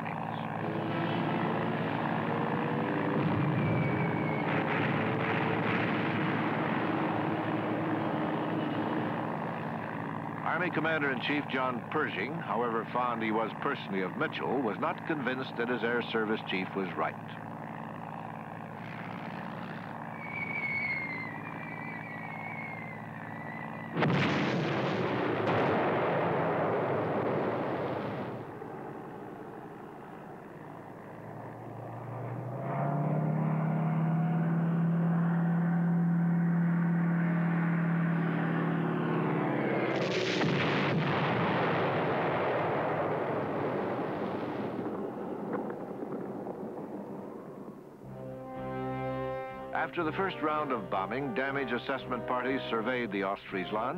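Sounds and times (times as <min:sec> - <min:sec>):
aircraft drone: 0:00.0 - 0:53.9
deep steady drone: 0:00.0 - 0:53.9
bomb explosions rumbling: 0:03.1 - 0:08.4, 0:23.9 - 0:28.6, 0:39.7 - 0:48.0
faint high whistles: 0:03.5 - 0:04.5, 0:20.1 - 0:24.0.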